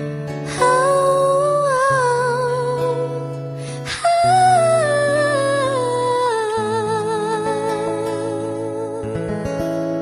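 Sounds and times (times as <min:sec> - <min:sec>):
acoustic guitar: 0:00.0 - 0:10.0
woman singing wordless melody: 0:00.2 - 0:10.0.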